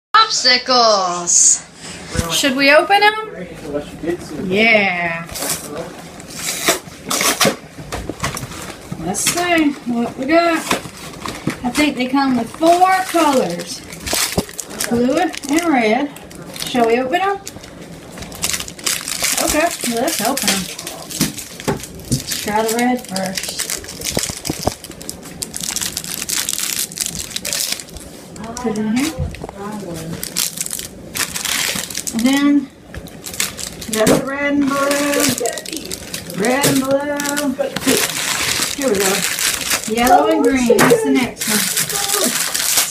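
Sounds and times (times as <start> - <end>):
plastic bag crinkling: 5.2 - 42.9.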